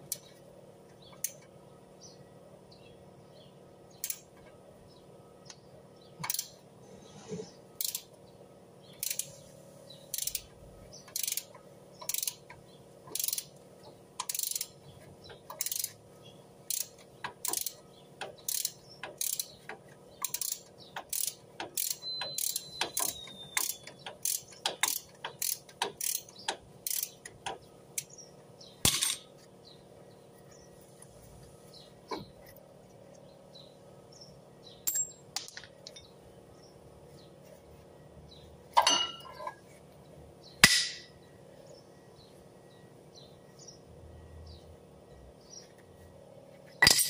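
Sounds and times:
ratchet wrench clicking: 4.0s - 4.3s, 6.2s - 6.6s, 7.8s - 8.1s, 9.0s - 9.4s, 10.1s - 13.5s, 14.2s - 16.0s, 16.7s - 28.1s.

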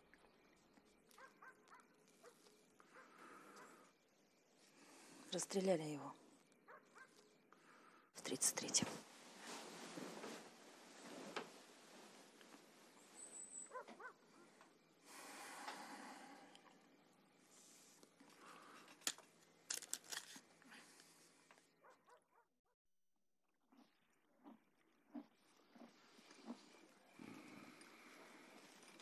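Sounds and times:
faint rustling: 8.7s - 14.6s.

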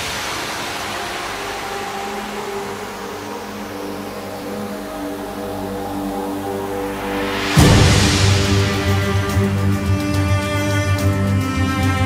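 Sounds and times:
held synth pad notes: 0.0s - 12.0s
hissing synth noise wash: 0.0s - 12.0s.

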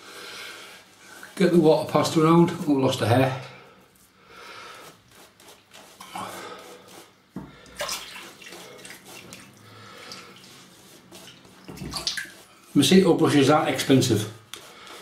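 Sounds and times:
shaving brush wet strokes: 0.6s - 3.1s, 3.8s - 15.0s.

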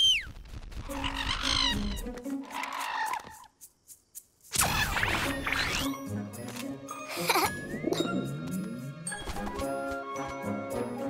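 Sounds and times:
bird-like calls: 0.0s - 3.5s
music: 0.7s - 11.0s.

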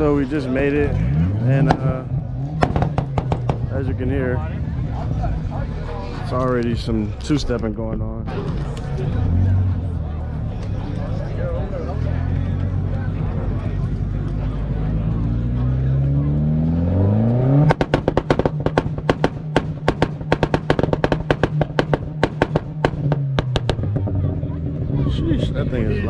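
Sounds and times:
car engine revving: 0.0s - 6.4s, 8.3s - 26.0s
exhaust pops and bangs: 1.6s - 4.0s, 17.6s - 24.9s.

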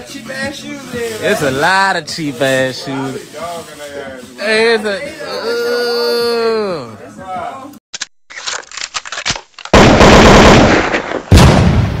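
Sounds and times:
gunfire-like blasts: 9.8s - 12.0s.

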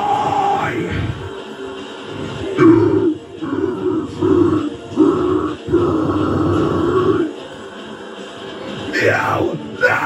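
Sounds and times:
man growling metal vocals: 0.0s - 1.3s, 2.6s - 7.3s.

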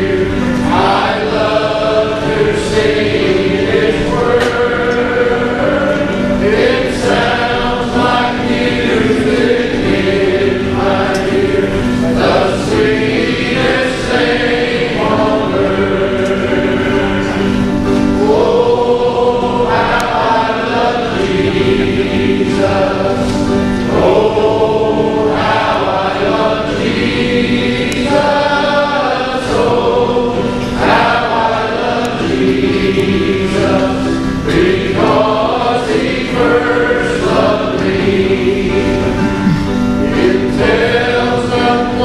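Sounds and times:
men singing a hymn: 0.0s - 42.0s.

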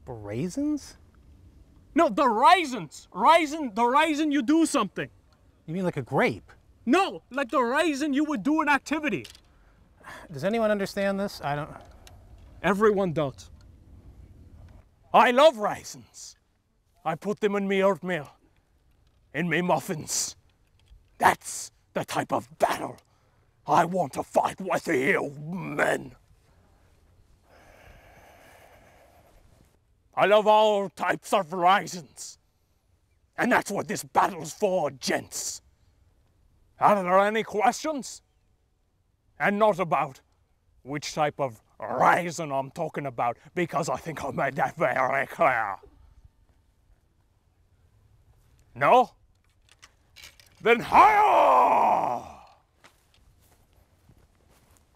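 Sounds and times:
faint ticks and rustles: 16.2s - 21.2s, 46.0s - 50.7s, 52.5s - 54.9s
man shouting: 21.2s - 23.0s, 23.7s - 26.2s, 50.6s - 52.5s.

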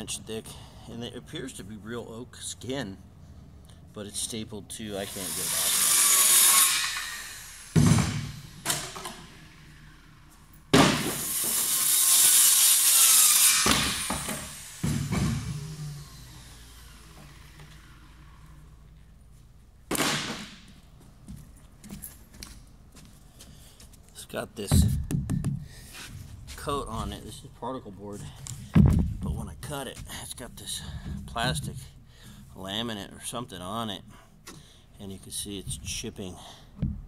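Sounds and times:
power saw cutting board: 5.0s - 18.8s.

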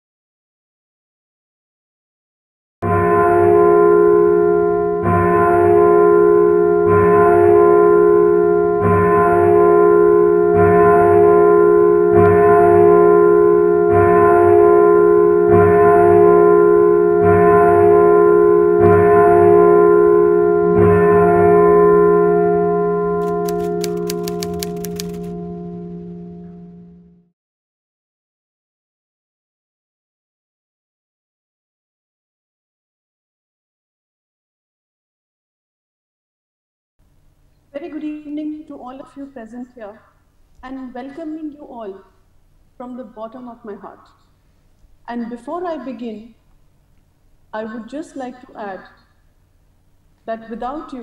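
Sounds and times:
deep bell-like chime: 2.8s - 23.2s
high ticks: 23.2s - 25.3s.

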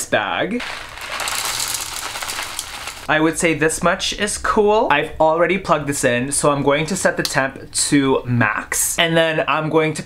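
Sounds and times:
wax beads pouring into a pot: 0.6s - 3.1s.

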